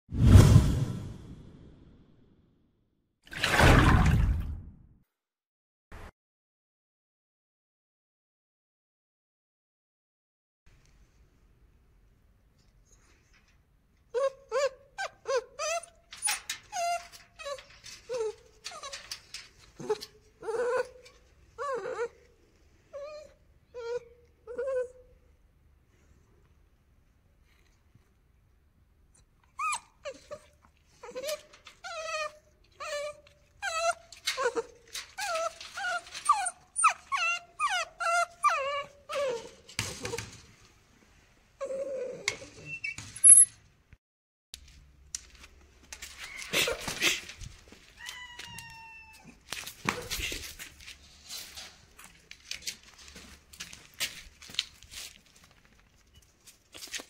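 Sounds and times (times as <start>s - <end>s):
puppy whining: 14.1s - 25.3s, 29.1s - 40.4s, 41.6s - 43.5s, 47.9s - 50.8s.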